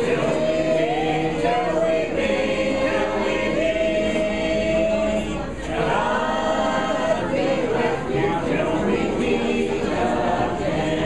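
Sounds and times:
group singing a hymn unaccompanied: 0:00.0 - 0:11.0.

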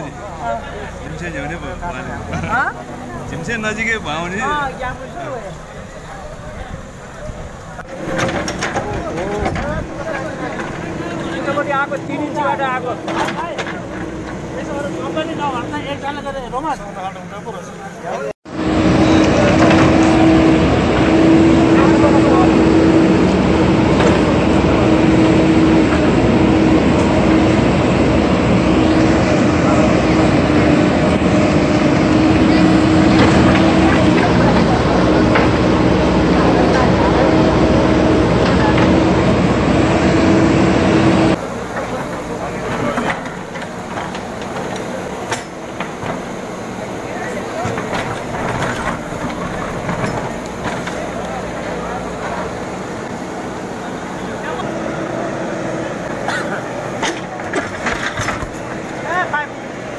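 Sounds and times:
crowd chattering: 0:00.0 - 0:59.9
diesel engine humming: 0:00.0 - 0:59.9.

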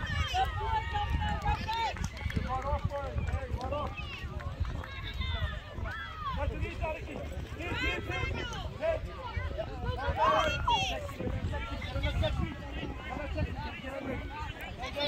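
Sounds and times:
people calling and shouting: 0:00.0 - 0:15.0.

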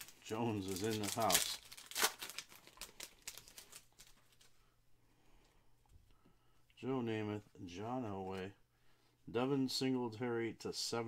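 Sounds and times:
foil wrapper crinkling: 0:00.0 - 0:04.6.

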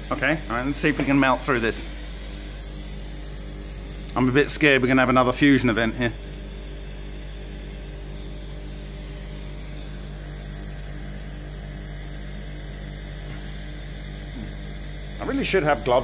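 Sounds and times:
electrical hum: 0:00.0 - 0:16.0
gas torch flame hissing: 0:00.0 - 0:16.0.

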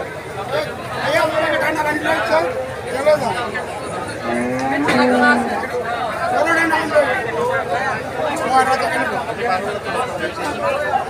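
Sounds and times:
crowd voices: 0:00.0 - 0:11.0
cow mooing: 0:04.2 - 0:05.8.

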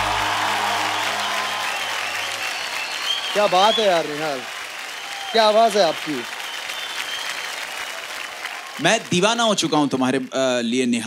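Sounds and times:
song backing music: 0:00.0 - 0:02.8
crowd applauding: 0:00.0 - 0:10.7.

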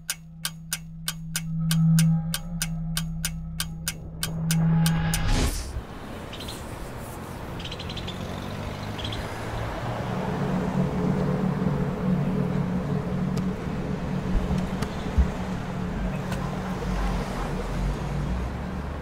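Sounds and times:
traffic engine rumble: 0:00.0 - 0:19.0.

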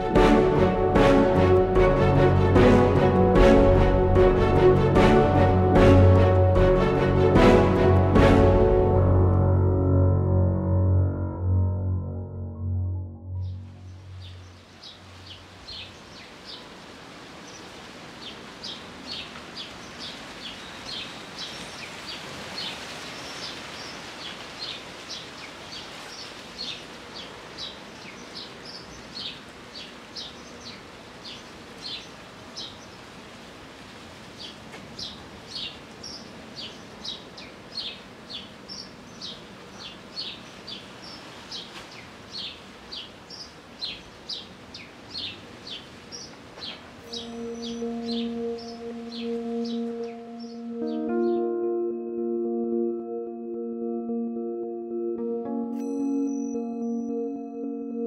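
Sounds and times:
ambient music with held tones: 0:00.0 - 0:15.3, 0:47.0 - 0:58.0
birds chirping: 0:13.3 - 0:16.7, 0:35.0 - 0:51.5
outdoor background noise: 0:13.4 - 0:50.9.

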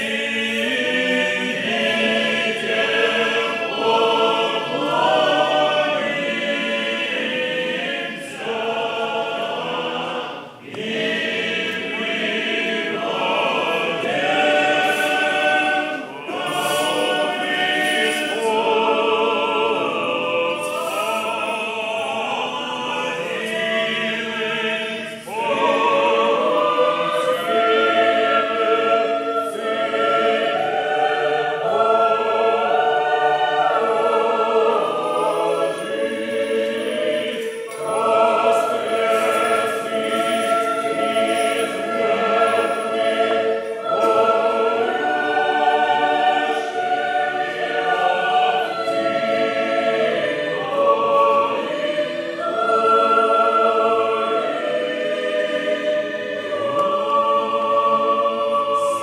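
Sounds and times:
church choir singing a hymn: 0:00.0 - 0:59.0.

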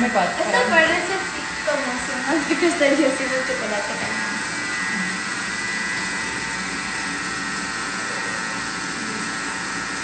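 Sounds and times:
kitchen mixer whipping cream: 0:00.0 - 0:10.0.

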